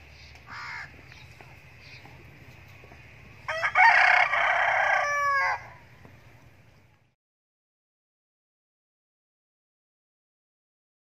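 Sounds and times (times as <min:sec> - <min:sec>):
rooster crowing: 0:03.5 - 0:05.9.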